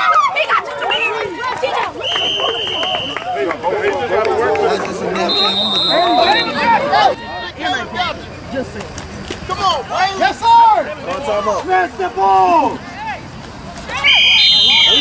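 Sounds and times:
spectators shouting and talking: 0.0s - 15.0s
high whistle tones: 2.0s - 3.3s, 5.1s - 7.2s, 14.0s - 15.0s.

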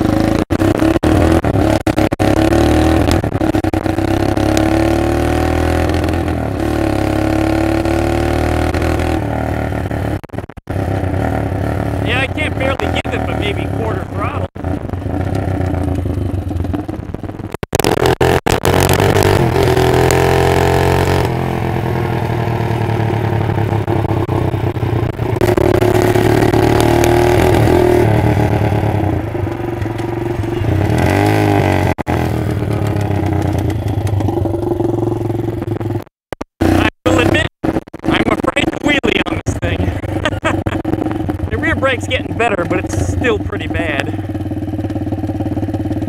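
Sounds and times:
minibike engine revving: 0.0s - 17.0s, 17.8s - 36.0s, 36.6s - 46.0s.

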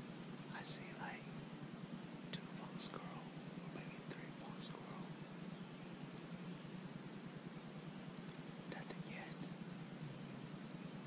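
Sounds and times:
man whispering: 0.5s - 1.3s, 2.3s - 5.1s, 8.7s - 9.5s.

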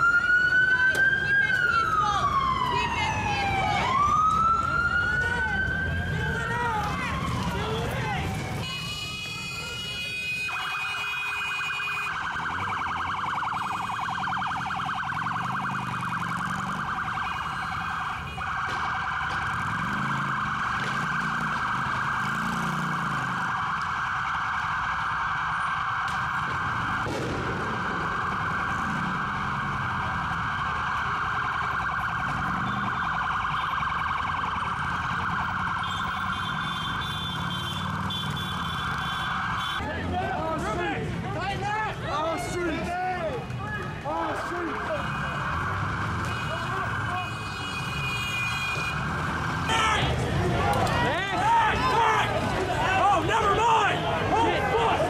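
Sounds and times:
police siren warbling: 0.0s - 42.8s, 44.1s - 55.0s.

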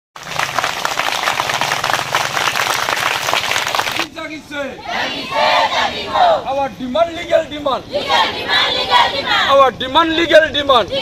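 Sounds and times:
crowd clapping: 0.2s - 4.1s.

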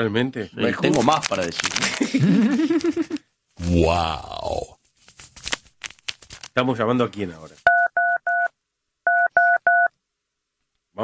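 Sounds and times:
telephone keypad beeps: 7.7s - 8.5s, 9.1s - 9.9s.

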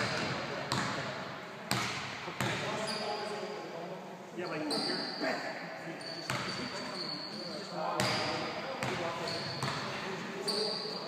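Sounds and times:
basketball bouncing on wooden floor: 1.7s - 2.6s.

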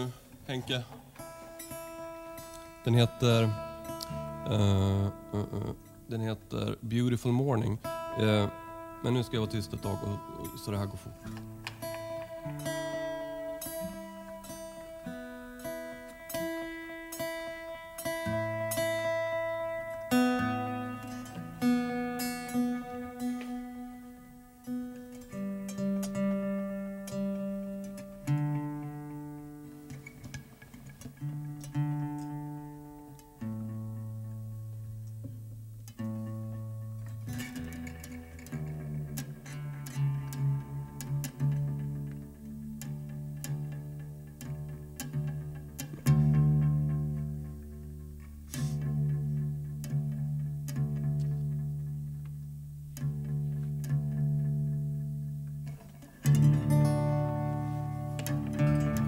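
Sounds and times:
acoustic guitars strumming: 0.0s - 59.0s.

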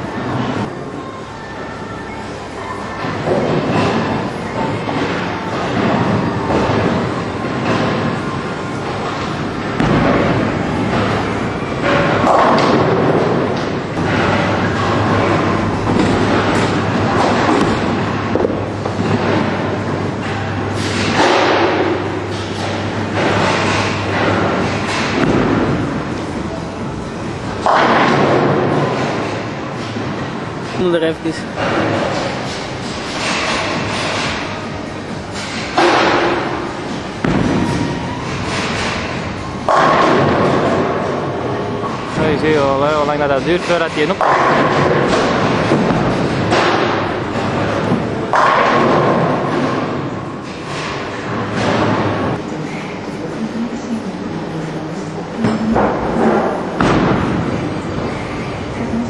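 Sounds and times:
noisy bowling alley: 0.0s - 59.0s
bowling ball striking pins: 5.0s - 26.1s, 44.2s - 52.4s
bowling ball rolling: 44.2s - 52.4s.

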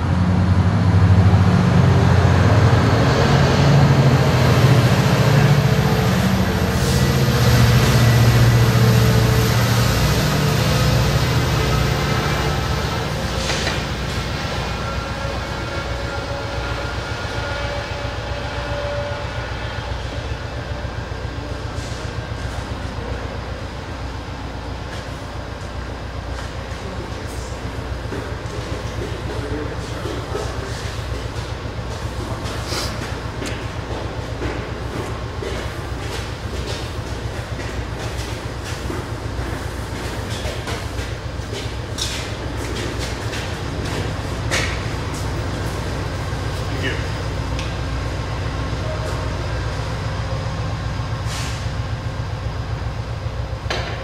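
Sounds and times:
locomotive engine drone: 0.0s - 54.0s
rumble of rolling train cars: 0.0s - 54.0s.

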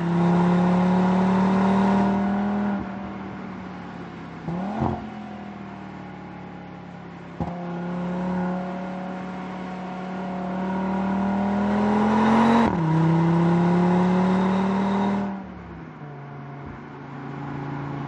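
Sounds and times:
car engine under load: 0.0s - 18.0s.

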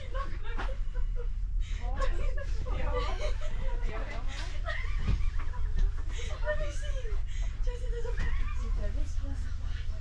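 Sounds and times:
passengers talking: 0.0s - 10.0s.

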